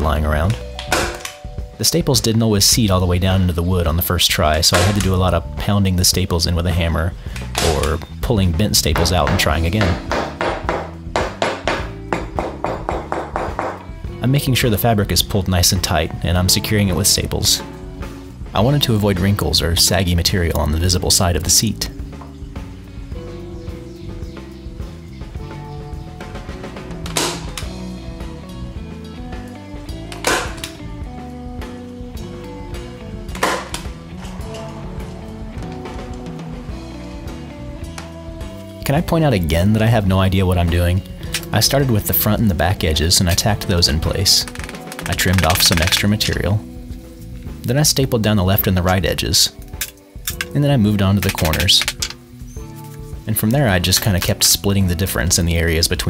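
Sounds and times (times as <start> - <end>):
background music: 0.0 - 56.0
hammer tapping staples into wood: 9.0 - 13.8
staple gun snapping: 51.2 - 52.2.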